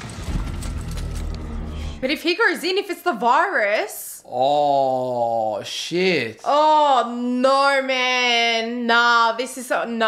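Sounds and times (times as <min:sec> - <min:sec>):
low rumbling music score: 0:00.0 - 0:02.2.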